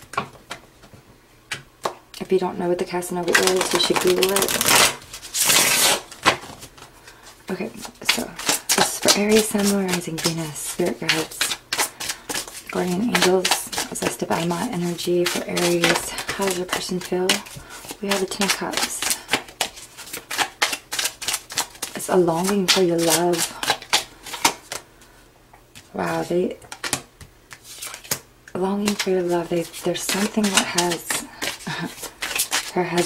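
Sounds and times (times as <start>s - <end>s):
cards rustling on a table: 3.3s - 6.9s, 7.8s - 24.9s, 26.7s - 28.2s, 28.8s - 33.0s.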